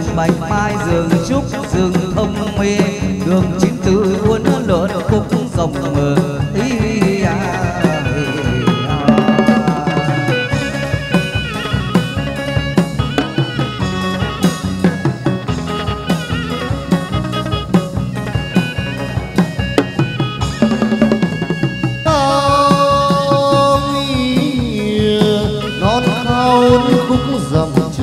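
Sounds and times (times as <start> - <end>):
drum and percussion strokes: 0.0 - 28.0
melodic instrument lines: 5.7 - 27.9.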